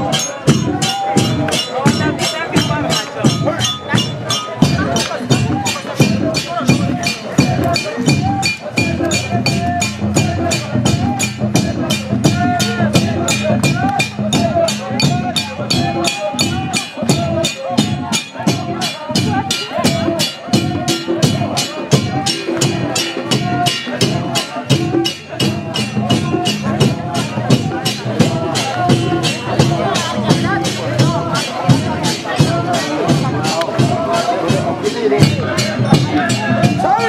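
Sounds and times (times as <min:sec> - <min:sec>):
hand drums and percussion: 0:00.0 - 0:37.0
congregation singing in chorus: 0:05.1 - 0:37.0.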